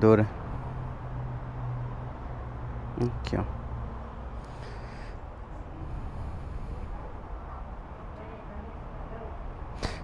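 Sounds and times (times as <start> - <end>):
low street rumble: 0.0 - 10.0.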